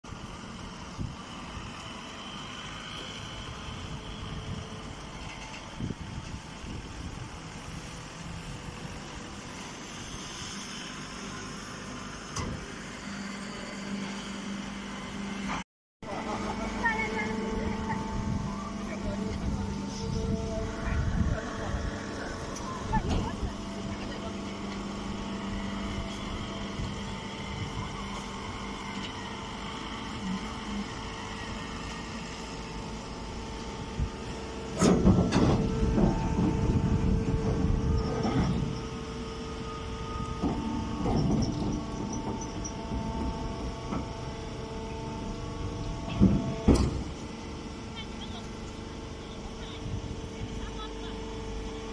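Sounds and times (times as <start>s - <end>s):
hay baler motor hum: 0.1s - 51.9s.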